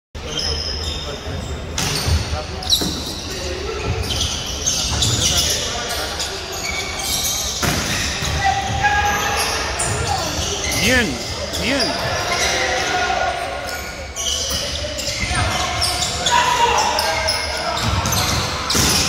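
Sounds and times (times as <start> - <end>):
sneaker squeaks: 0.2 - 8.5, 13.8 - 19.0
players' voices: 10.0 - 12.2.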